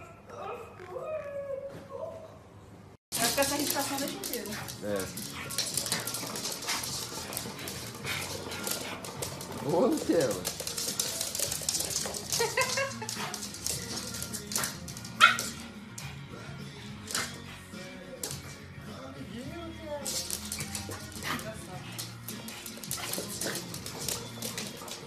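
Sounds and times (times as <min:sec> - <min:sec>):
dogs growling: 0:03.6 - 0:14.6
dogs barking: 0:15.1 - 0:15.8.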